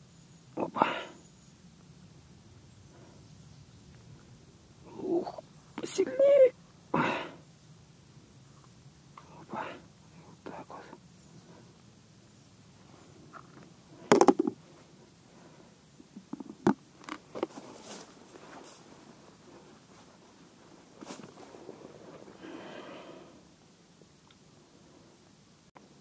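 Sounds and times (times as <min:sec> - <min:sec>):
tackle clicks and knocks: 0:14.1 - 0:14.6, 0:16.3 - 0:17.5
soft rustling: 0:16.4 - 0:22.5.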